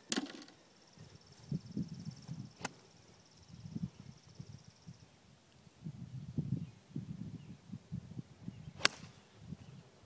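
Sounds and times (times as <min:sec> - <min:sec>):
insects trilling: 0:00.5 - 0:05.2.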